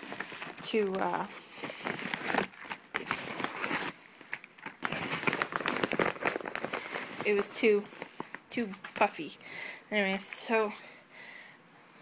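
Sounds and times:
paper and plastic packets crinkling: 0.0s - 9.4s.

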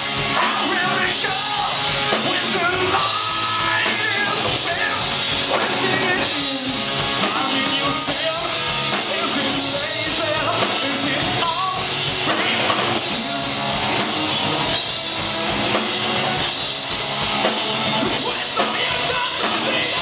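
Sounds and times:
drum kit with crashing cymbals: 0.0s - 20.0s
electric guitar: 0.0s - 20.0s.

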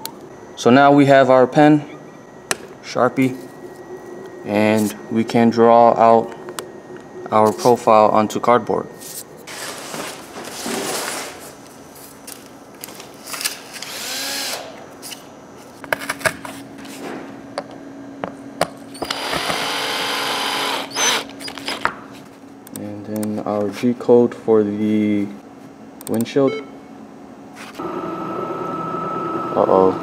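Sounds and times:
cordless drill driving screws: 13.8s - 14.8s, 19.0s - 21.8s.

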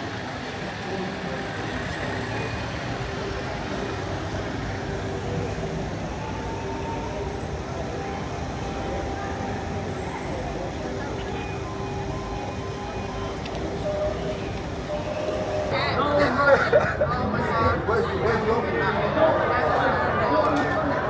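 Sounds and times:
engine hum: 0.0s - 21.0s.

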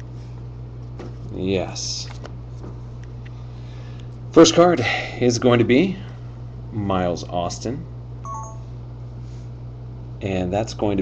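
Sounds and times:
low electrical hum: 0.0s - 11.0s
electronic alert beeps: 8.3s - 8.7s.

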